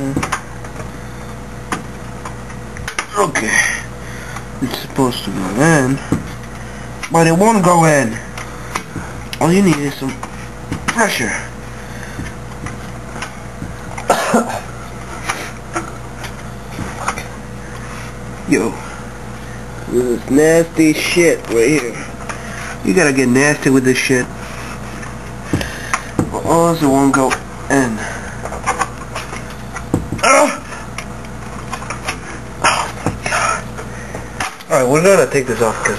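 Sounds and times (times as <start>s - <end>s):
steady low hum: 0.0s - 35.9s
man coughing: 14.0s - 14.7s.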